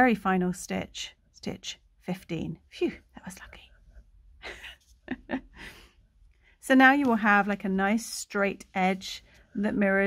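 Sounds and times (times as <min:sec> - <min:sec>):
woman whispering: 0:02.8 - 0:03.9.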